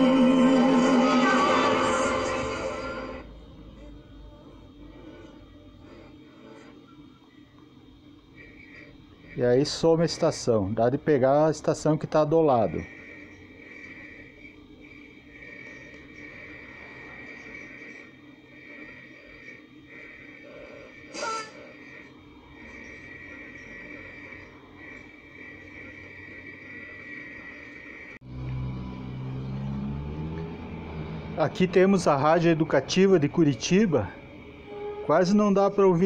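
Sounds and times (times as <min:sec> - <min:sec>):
steady high whistle: 0:32.1 - 0:36.0.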